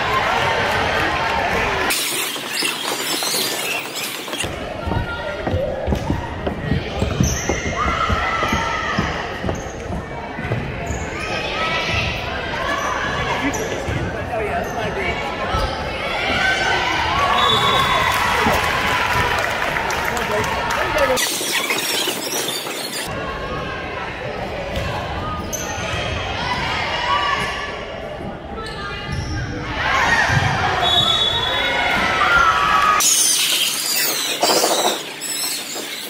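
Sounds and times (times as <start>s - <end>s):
crowd and player voices: 0.0s - 36.0s.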